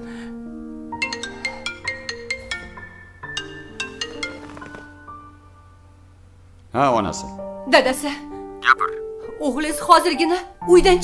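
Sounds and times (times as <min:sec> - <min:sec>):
soft background music: 0:00.0 - 0:11.0
marimba-like phone ringtone: 0:01.0 - 0:04.9.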